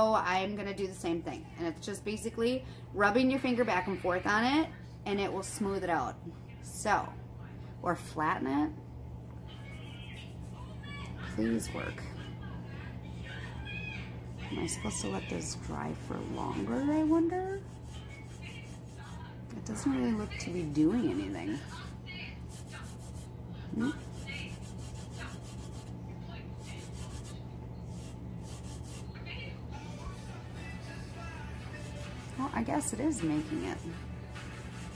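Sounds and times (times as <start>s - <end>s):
steady low hum: 0.0s - 34.9s
fingertip rubbing glitter coating: 9.5s - 10.7s, 14.4s - 29.2s, 30.6s - 34.9s.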